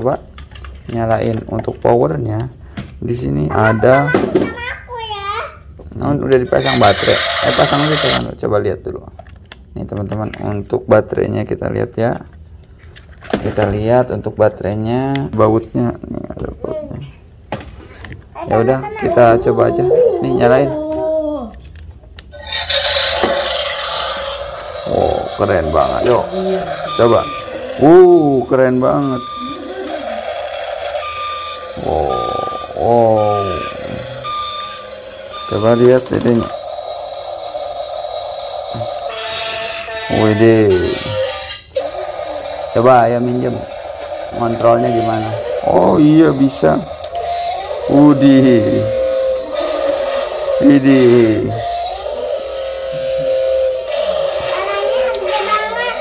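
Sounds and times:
child's voice: 3.5 - 5.7, 18.4 - 21.6, 54.4 - 56.0
toy excavator humming: 6.6 - 8.3, 22.4 - 56.0.

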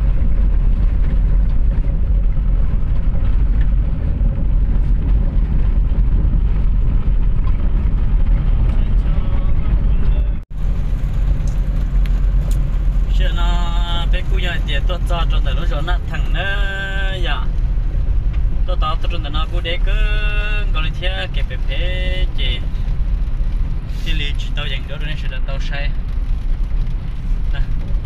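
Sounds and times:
car engine and tyres rumbling: 0.0 - 28.0.

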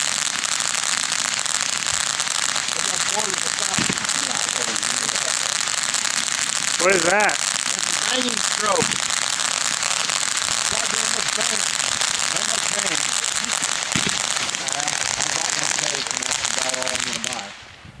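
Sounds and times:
firework fountain hissing and crackling: 0.0 - 18.0
sharp firework pop: 3.6 - 5.1, 8.7 - 9.3, 12.2 - 17.6.

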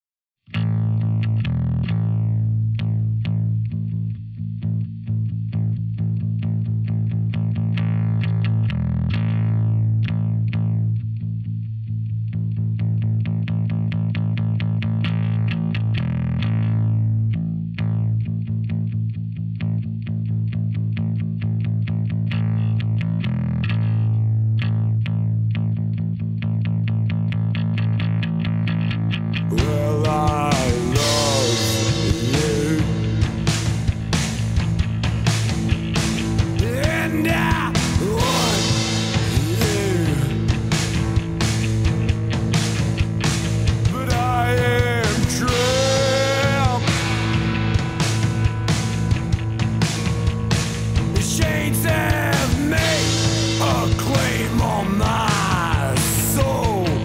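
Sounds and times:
distorted electric bass guitar: 0.4 - 57.0
full rock band playing: 29.5 - 57.0.

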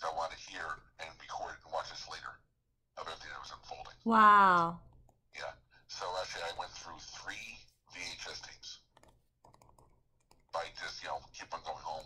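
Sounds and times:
person speaking: 4.0 - 4.8.

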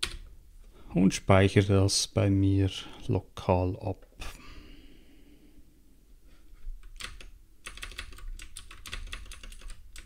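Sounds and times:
typing on computer keyboard: 6.8 - 10.0.

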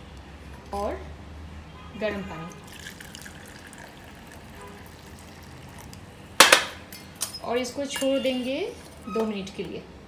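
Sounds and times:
water trickling into pot: 2.6 - 6.0.

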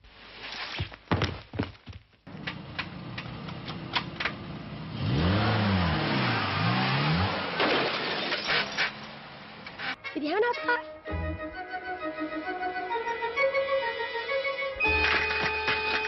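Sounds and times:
car engine revving: 2.6 - 7.9.

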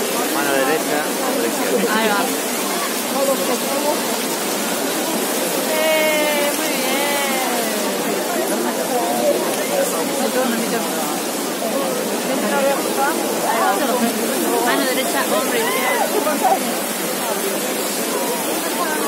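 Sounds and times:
crowd chatter: 0.0 - 19.0
fountain water rushing: 0.0 - 19.0
person's voice: 5.6 - 11.2.

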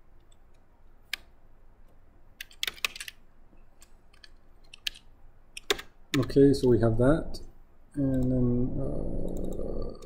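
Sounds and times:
typing on computer keyboard: 2.4 - 3.2, 4.1 - 6.4.

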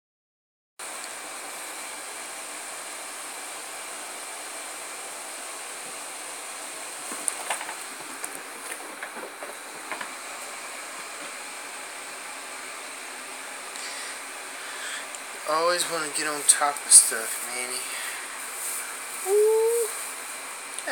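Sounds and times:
steady room hiss: 0.8 - 20.9.

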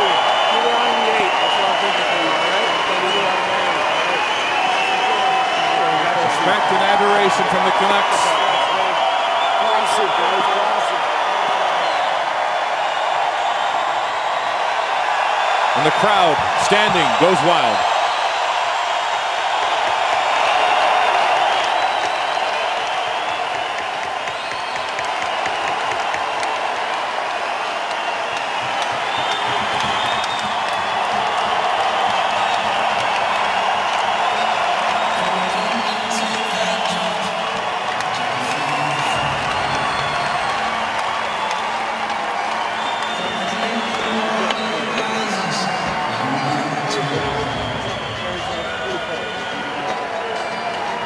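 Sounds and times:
crowd cheering and applause: 0.0 - 51.0
high shouts from crowd: 0.0 - 51.0.

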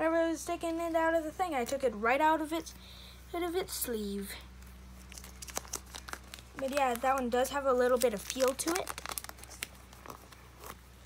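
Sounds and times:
plastic page crinkling: 5.0 - 10.9.

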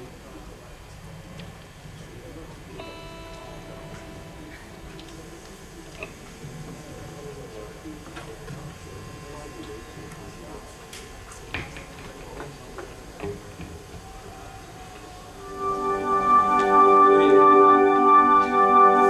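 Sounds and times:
low chatter: 0.0 - 19.0
organ-like keyboard chords: 2.8 - 6.3, 15.4 - 19.0.

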